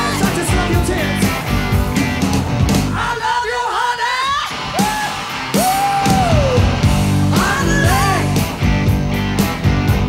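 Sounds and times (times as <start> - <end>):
person singing and shouting: 0.0 - 1.3, 2.9 - 8.5
rock band playing: 0.0 - 10.0.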